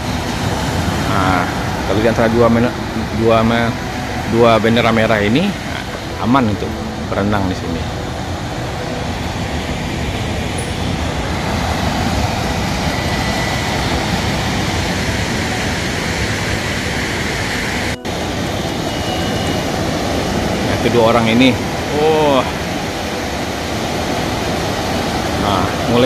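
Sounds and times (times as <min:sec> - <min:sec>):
ocean surf breaking on beach: 0:00.0 - 0:26.0.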